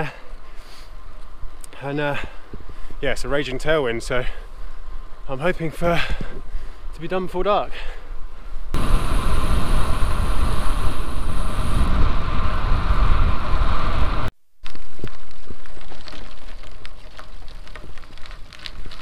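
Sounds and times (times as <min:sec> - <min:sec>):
wind buffeting microphone: 0:08.7 - 0:14.3
bicycle tyres crunching on gravel: 0:14.6 - 0:19.0
small stones clicking: 0:14.6 - 0:19.0.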